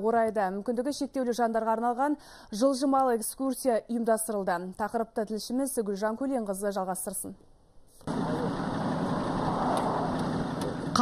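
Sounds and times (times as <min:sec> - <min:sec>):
engine running: 0:08.0 - 0:11.0
traffic noise: 0:08.0 - 0:11.0.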